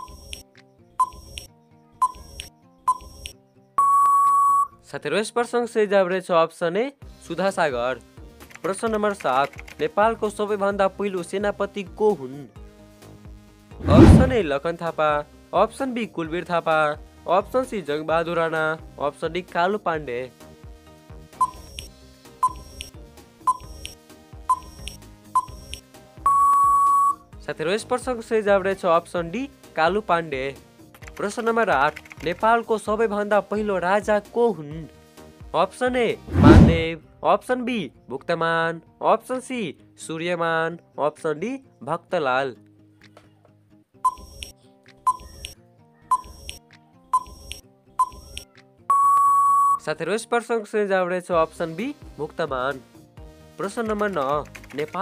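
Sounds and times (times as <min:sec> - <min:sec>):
soft background music: 0:00.0 - 0:55.0
electronic beep: 0:01.0 - 0:04.7, 0:21.4 - 0:21.8, 0:22.4 - 0:22.8, 0:23.5 - 0:23.8, 0:24.5 - 0:25.7, 0:26.3 - 0:27.2, 0:44.1 - 0:44.5, 0:45.1 - 0:46.6, 0:47.2 - 0:49.8
long steady beep: 0:03.8 - 0:04.7, 0:26.3 - 0:27.2, 0:44.1 - 0:44.4, 0:48.0 - 0:48.3, 0:48.9 - 0:49.8
low thud: 0:13.8 - 0:14.4, 0:36.3 - 0:36.9.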